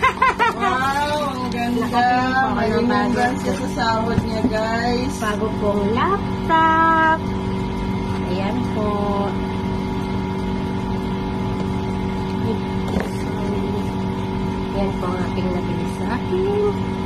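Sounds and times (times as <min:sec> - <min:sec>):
steady machine hum: 0:00.0 - 0:17.0.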